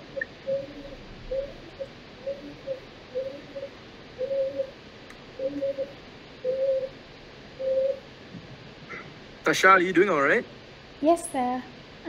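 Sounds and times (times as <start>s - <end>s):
bird cooing: 0.0s - 4.8s, 5.4s - 7.0s, 7.6s - 8.0s.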